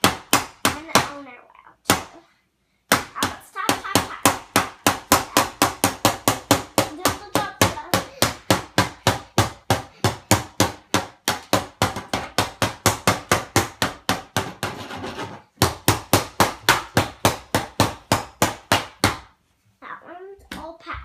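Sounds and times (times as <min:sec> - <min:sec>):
toy hammer banging on wood: 0:00.0 - 0:01.2, 0:02.9 - 0:19.3.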